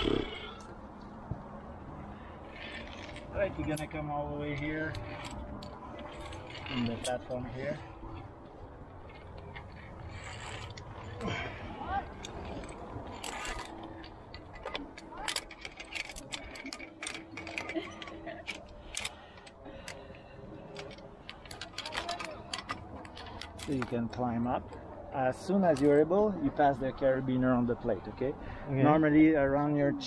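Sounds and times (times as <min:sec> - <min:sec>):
harness gear rustling: 0:00.0 - 0:24.2
carabiners clicking on steel cable: 0:02.1 - 0:24.2, 0:25.6 - 0:26.0.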